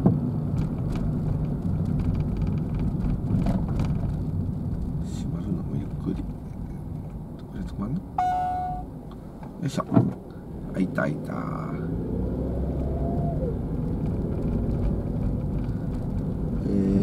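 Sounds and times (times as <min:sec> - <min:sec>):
car engine and road rumble: 0:00.0 - 0:17.0
electronic beep: 0:08.2 - 0:08.9.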